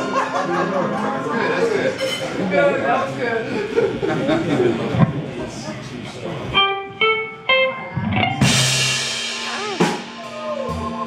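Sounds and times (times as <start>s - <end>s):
blues band playing: 0.0s - 11.0s
electric guitar single notes: 6.5s - 10.3s
cymbal crash: 8.2s - 10.5s.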